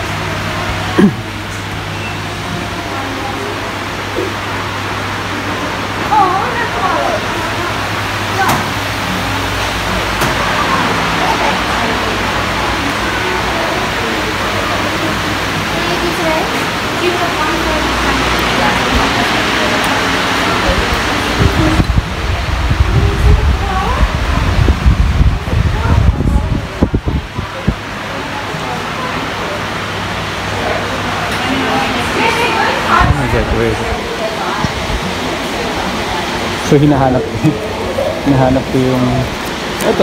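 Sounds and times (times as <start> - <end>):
indistinct distant voices: 0.0 - 40.0
steady hum and hiss: 0.0 - 40.0.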